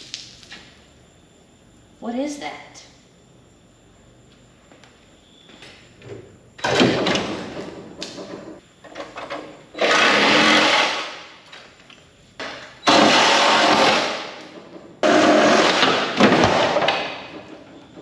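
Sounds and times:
power saw cutting: 0:09.8 - 0:11.2, 0:12.9 - 0:14.3.

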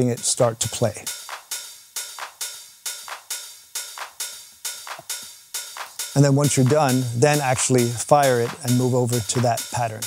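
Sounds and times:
electronic drum loop: 0:00.0 - 0:10.0.

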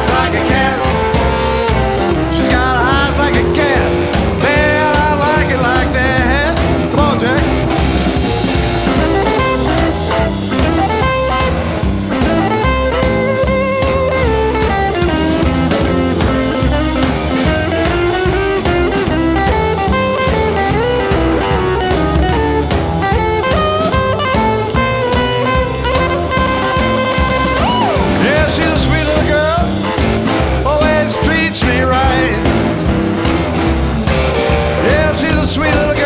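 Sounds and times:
bass: 0:00.0 - 0:36.0
drum kit beat: 0:00.0 - 0:36.0
electric guitar lead: 0:00.0 - 0:36.0.

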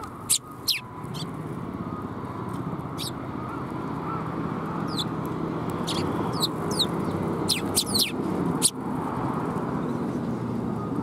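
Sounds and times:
sparrows chirping: 0:00.0 - 0:08.9.

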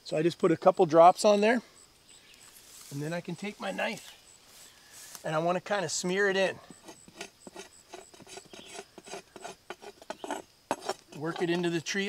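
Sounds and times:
knife blade scraping tree bark: 0:06.7 - 0:11.7.

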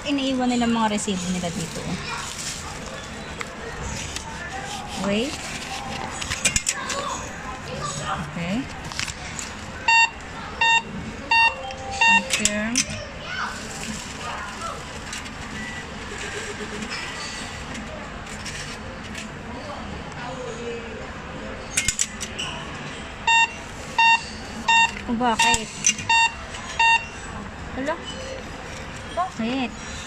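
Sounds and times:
short electronic beeps: 0:09.9 - 0:12.5, 0:23.3 - 0:25.5, 0:26.1 - 0:27.2.

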